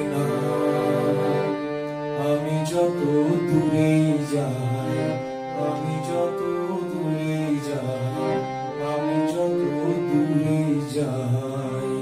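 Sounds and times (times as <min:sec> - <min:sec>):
harmonium held chords: 0:00.0 - 0:12.0.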